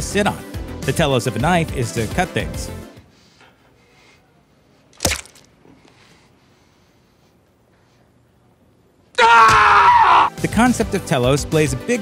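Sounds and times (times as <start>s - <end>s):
knife stabbing thud: 5.0s - 5.4s.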